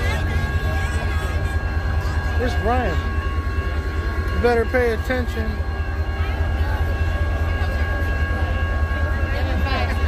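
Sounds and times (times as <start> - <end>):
crowd chatter: 0.0 - 10.0
diesel locomotive idling: 0.0 - 10.0
high whine: 0.0 - 10.0.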